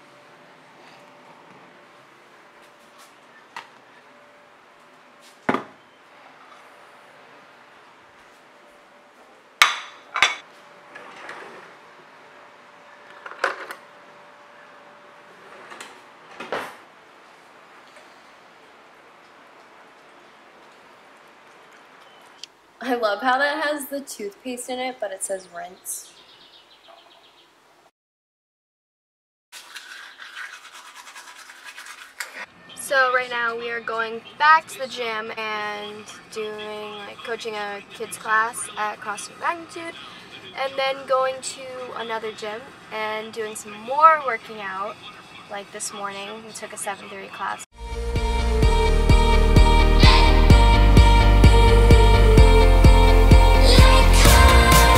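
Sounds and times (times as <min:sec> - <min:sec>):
toothbrush scrubbing teeth: 0:29.6 - 0:32.5.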